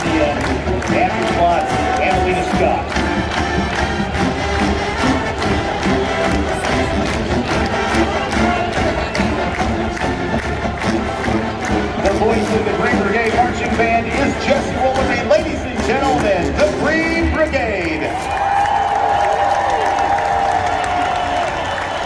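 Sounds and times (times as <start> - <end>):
marching band playing: 0.0 - 18.5
crowd cheering: 0.0 - 22.0.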